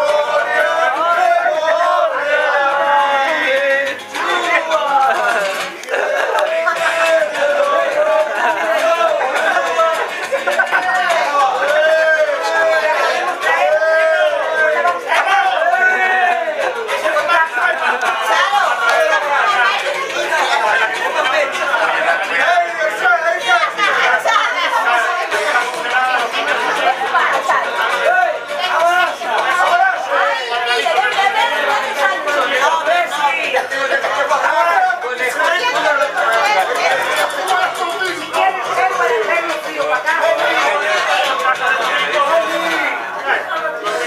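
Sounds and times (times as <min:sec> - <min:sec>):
group chatter: 0:00.0 - 0:44.0
overlapping conversation: 0:00.0 - 0:44.0.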